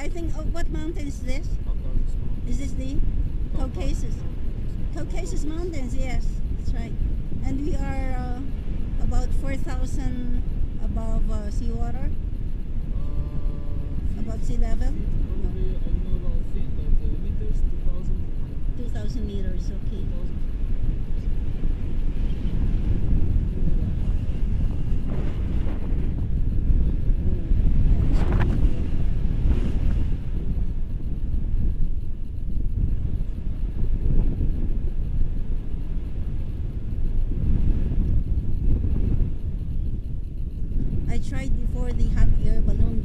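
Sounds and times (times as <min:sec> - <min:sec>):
wind rushing over microphone: 0:00.0 - 0:43.0.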